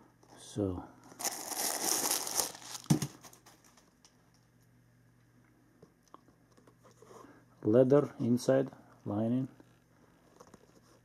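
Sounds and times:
paper stuffing crinkling: 1.1 - 4.0.

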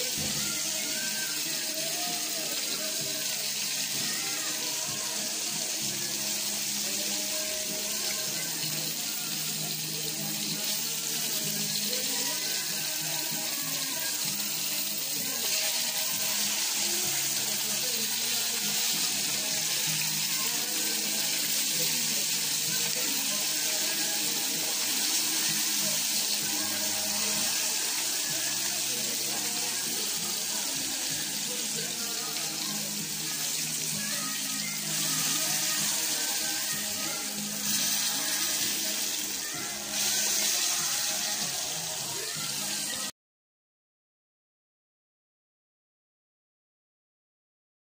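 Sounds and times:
fish sizzling in hot oil: 0.0 - 43.1.

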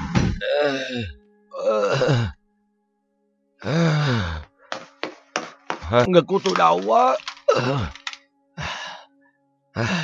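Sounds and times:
soft background music note: 0.0 - 10.0
man breathing heavily: 8.6 - 9.1.

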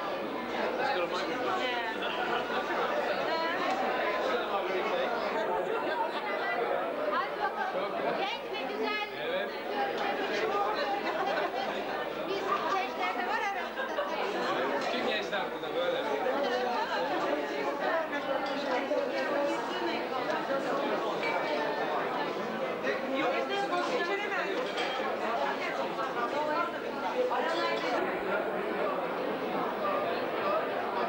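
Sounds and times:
babble of overlapping voices: 0.0 - 31.0.

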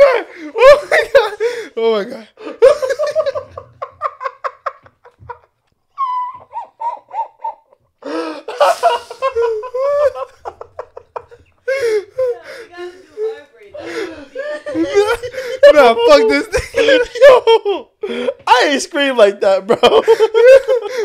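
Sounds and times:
men laughing hard: 0.0 - 1.8, 2.4 - 18.5, 19.7 - 21.0.

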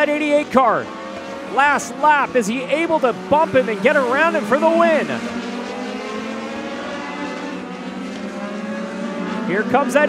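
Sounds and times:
race car engines buzzing: 0.0 - 10.0.

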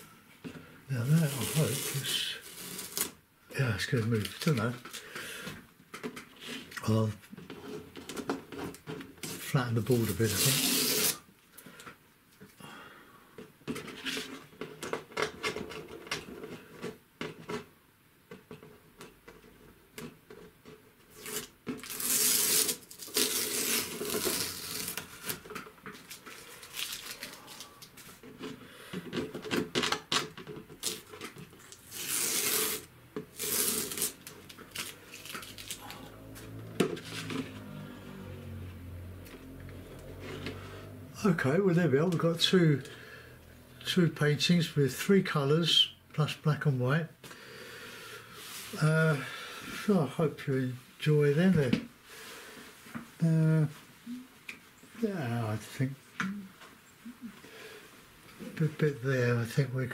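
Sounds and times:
tape peeling off paper: 1.1 - 3.2, 9.2 - 11.2, 21.1 - 28.1, 30.8 - 36.4
tearing rasp: 9.2 - 11.2, 21.1 - 25.4, 30.8 - 36.1.

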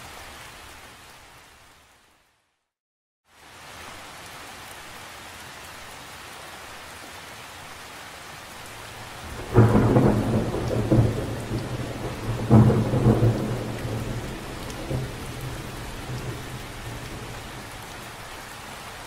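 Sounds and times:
steady rain: 0.0 - 2.6, 3.2 - 19.0
thunder clap: 9.3 - 17.6.

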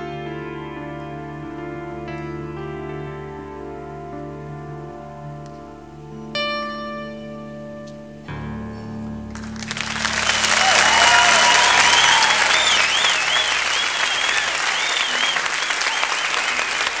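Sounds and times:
low piano chord: 0.0 - 10.6
audience applause: 9.3 - 17.0
wavering whistles: 10.1 - 17.0.

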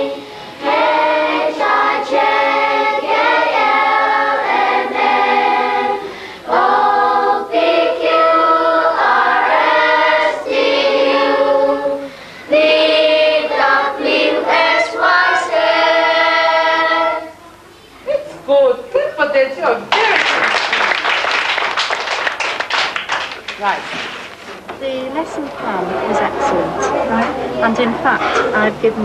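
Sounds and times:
children singing in unison: 0.0 - 17.4.

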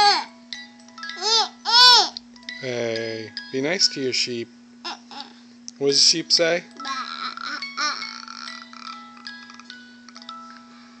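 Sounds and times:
tinkling music-box tune: 2.4 - 4.1, 7.6 - 11.0.

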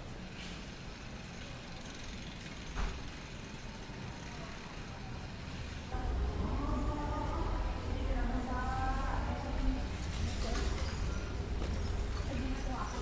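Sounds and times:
urban street rumble: 0.0 - 13.0.

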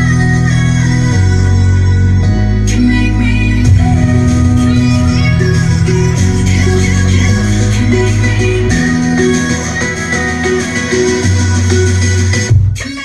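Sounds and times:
deep bass notes: 0.0 - 12.8.

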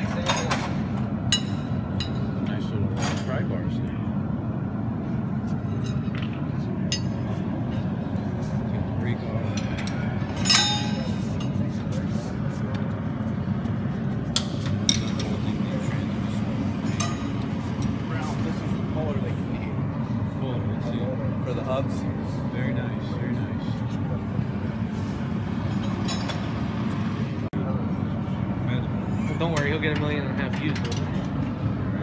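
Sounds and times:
murmur of people talking: 0.0 - 32.0
metal tools clinking: 9.5 - 11.6, 25.8 - 26.5.

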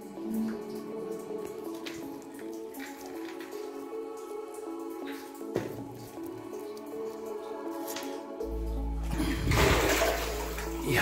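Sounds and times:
soft background music: 0.0 - 11.0
water splashing loudly: 9.1 - 11.0.

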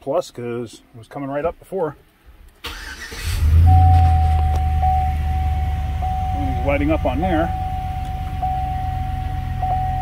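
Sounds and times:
pickup engine starting and idling: 2.6 - 10.0
high-pitched tone: 3.6 - 10.0.

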